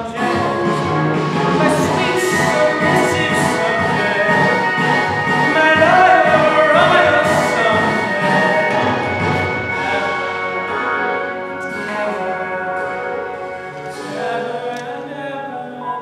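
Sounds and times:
boy singing showtune: 0.0s - 1.0s, 1.6s - 4.7s, 5.4s - 10.4s
orchestral accompaniment: 0.0s - 15.8s.

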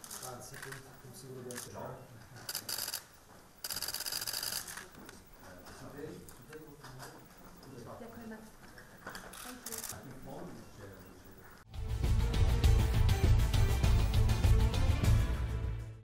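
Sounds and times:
camera shutters clicking: 2.4s - 5.1s, 9.1s - 10.0s.

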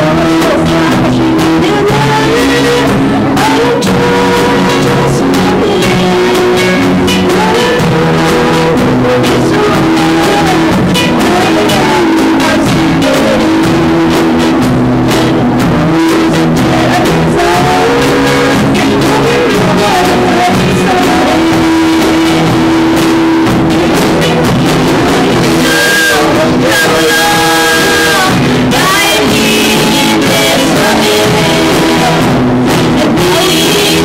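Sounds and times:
drum kit: 0.0s - 34.0s
guitars: 0.0s - 34.0s
women singing lead: 0.0s - 34.0s.

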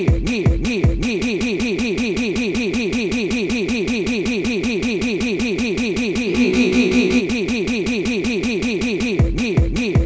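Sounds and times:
steady high tone: 6.2s - 7.6s
stuttering electronic music loop: 6.2s - 7.7s.

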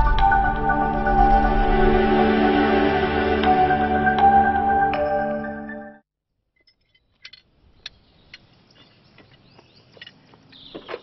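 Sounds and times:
faint steady outdoor hiss: 6.8s - 11.0s
birds chirping: 7.6s - 11.0s.

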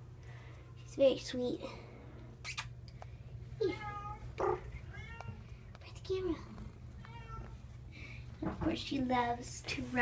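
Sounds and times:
cat meowing: 3.6s - 5.5s, 6.9s - 7.6s.

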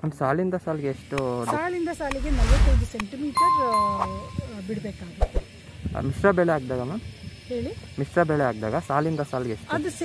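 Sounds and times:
bell-like notification ding: 3.4s - 4.5s.

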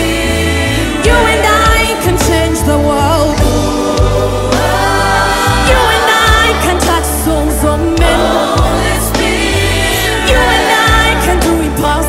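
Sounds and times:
backing vocalists singing: 0.0s - 12.0s
band with steady bass: 0.0s - 12.0s
lead singer singing: 0.0s - 12.0s.

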